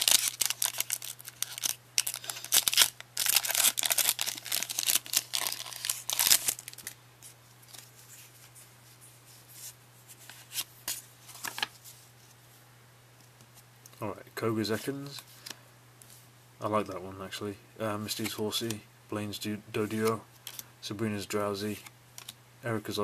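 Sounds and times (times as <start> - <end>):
foil wrapper tearing and crinkling: 0.0 - 7.0.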